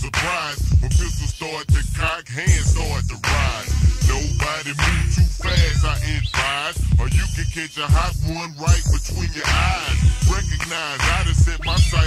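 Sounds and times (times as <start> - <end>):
rapping over slowed hip-hop beat: 0.0 - 12.0.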